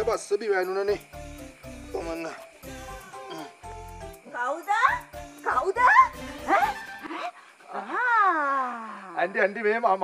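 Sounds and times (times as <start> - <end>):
background music: 0.0 - 7.4.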